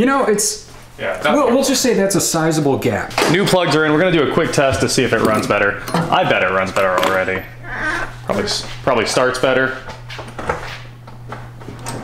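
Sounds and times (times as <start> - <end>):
steady low hum: 3.7 - 12.0.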